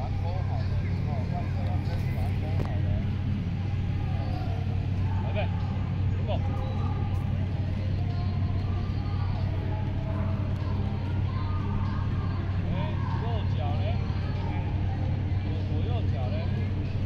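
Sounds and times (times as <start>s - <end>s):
faint voices: 0.0s - 17.0s
steady low hum: 0.0s - 17.0s.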